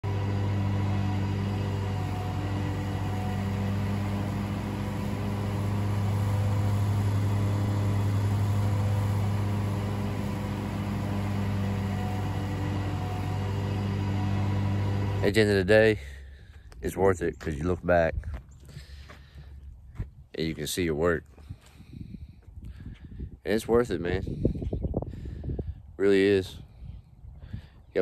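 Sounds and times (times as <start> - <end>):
riding mower cutting grass: 0.0 - 15.7.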